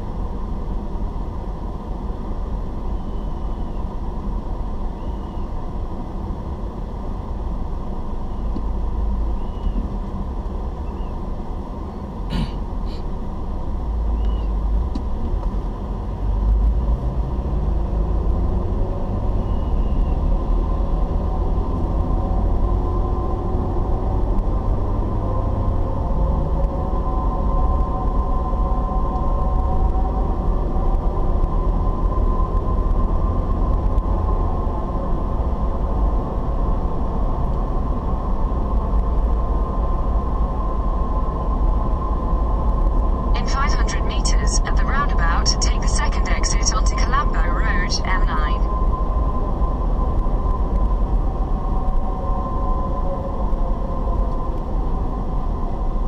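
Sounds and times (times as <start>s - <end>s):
car engine and road rumble: 0.0s - 56.0s.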